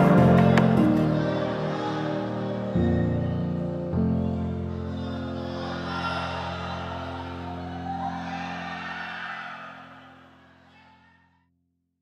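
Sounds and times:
background music: 0:00.0 - 0:11.2.

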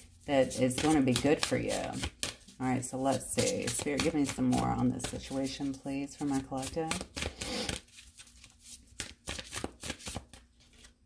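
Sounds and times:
cards being shuffled: 0:00.1 - 0:11.0.

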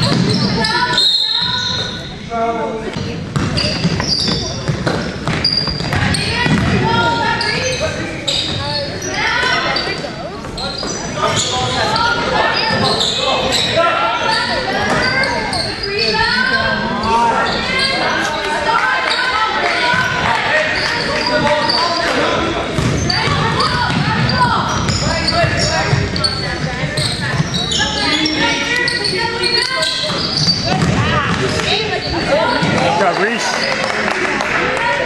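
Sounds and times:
sneakers squeaking: 0:00.0 - 0:34.1
voices calling out: 0:00.0 - 0:35.0
basketball bouncing on hardwood floor: 0:03.3 - 0:06.9, 0:30.7 - 0:31.4.

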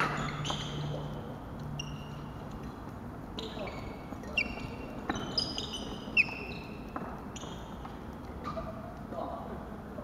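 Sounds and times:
shoes squeaking on wooden floor: 0:00.0 - 0:01.1, 0:03.4 - 0:08.1.

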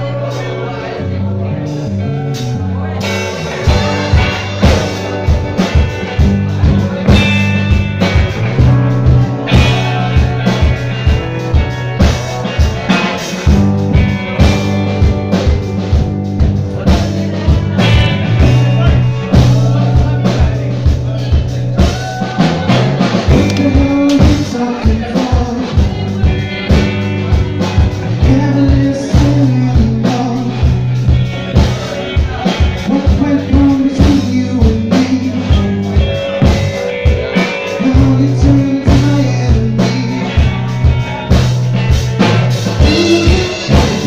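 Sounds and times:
electric guitars: 0:00.0 - 0:44.0
live rock band playing: 0:00.0 - 0:44.0
drum kit steady beat: 0:01.7 - 0:44.0.

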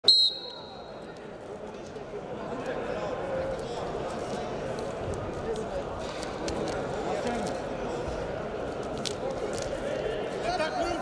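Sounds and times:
referee's whistle: 0:00.0 - 0:00.9.

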